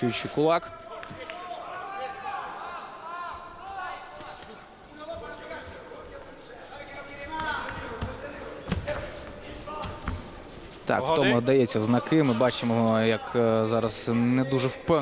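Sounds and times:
crowd voices and calls: 0.0 - 15.0
footwork on canvas: 7.3 - 10.8.

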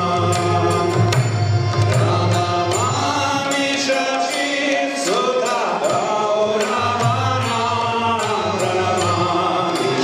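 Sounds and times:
harmonium chords: 0.0 - 10.0.

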